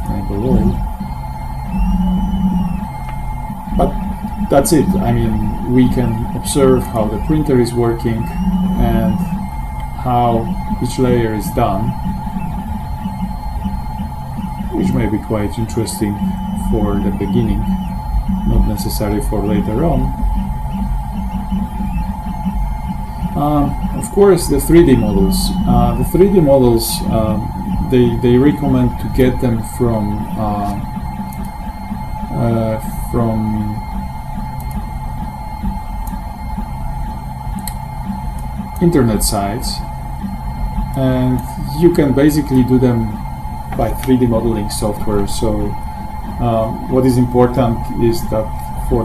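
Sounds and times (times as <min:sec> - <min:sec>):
low hum: 0:00.0 - 0:49.0
mid-pitched whine: 0:00.0 - 0:49.0
thin constant high tone: 0:00.0 - 0:49.0.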